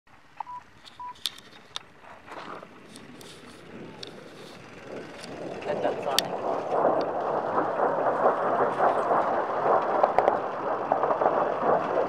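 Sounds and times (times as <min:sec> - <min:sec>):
sharp clicks: 0:06.1 - 0:12.0.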